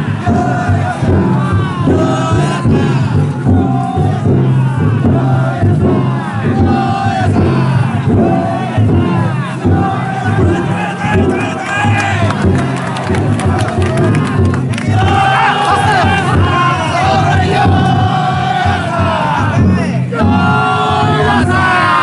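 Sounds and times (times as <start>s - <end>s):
crowd of men shouting and chanting: 0.0s - 22.0s.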